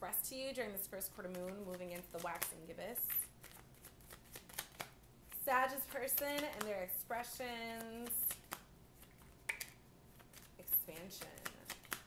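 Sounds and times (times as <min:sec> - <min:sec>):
cards rustling: 0:01.2 - 0:06.9, 0:07.5 - 0:12.0
cards clicking while shuffled: 0:01.3 - 0:06.8, 0:07.7 - 0:12.0.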